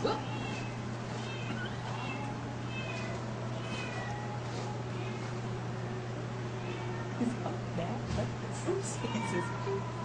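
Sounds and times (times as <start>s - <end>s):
cats meowing: 0.0s - 7.4s, 8.8s - 10.0s
steady low hum: 0.0s - 10.0s.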